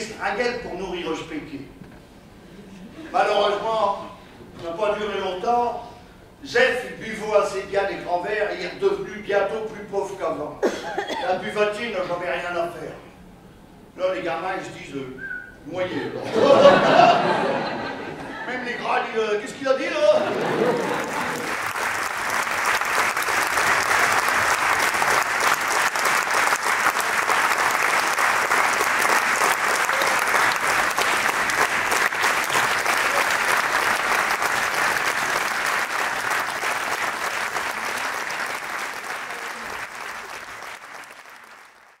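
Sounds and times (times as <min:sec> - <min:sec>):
audience applauding: 0:20.0 - 0:42.0.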